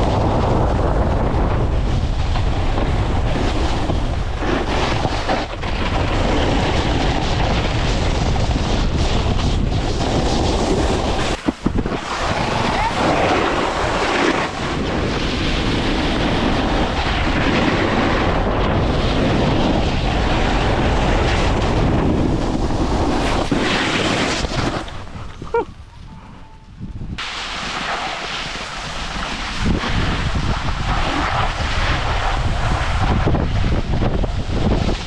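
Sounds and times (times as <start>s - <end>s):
skis scraping over snow: 0.0s - 25.4s, 27.2s - 35.0s
wind on microphone: 0.0s - 35.0s.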